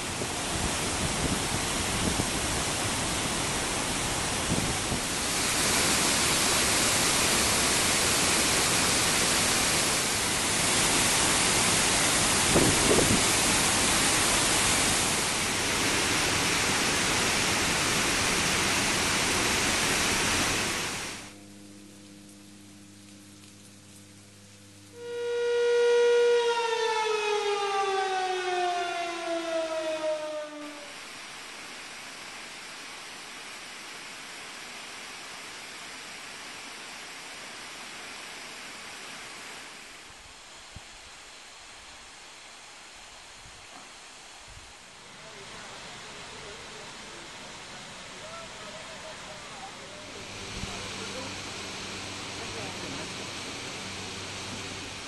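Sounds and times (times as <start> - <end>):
rush of water: 0.0 - 21.4, 26.5 - 55.0
waterfall roaring: 0.0 - 21.4, 27.2 - 40.3, 44.0 - 55.0
warning siren winding down: 24.9 - 31.0.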